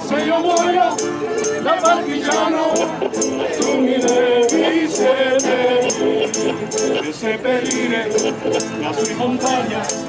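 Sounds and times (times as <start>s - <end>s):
men and women singing together: 0.0s - 10.0s
strummed acoustic guitar: 0.0s - 10.0s
small high-pitched strummed instrument: 0.1s - 10.0s.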